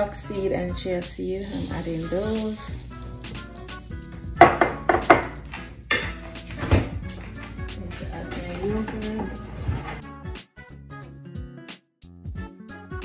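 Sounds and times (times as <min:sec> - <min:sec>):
background music: 0:00.0 - 0:13.0
glass dish knocking: 0:04.4 - 0:06.2.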